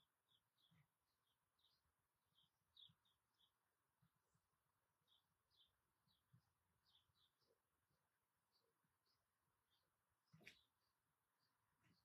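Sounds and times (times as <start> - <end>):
distant birds chirping: 0.0 - 12.0.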